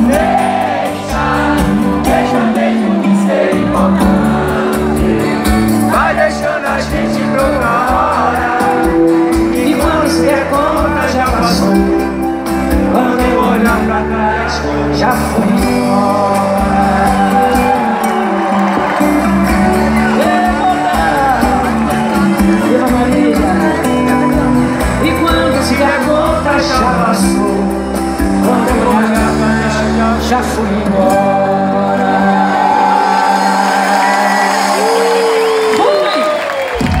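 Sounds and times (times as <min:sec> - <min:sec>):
faint crowd: 0:00.0 - 0:37.0
live band through pa: 0:00.0 - 0:37.0.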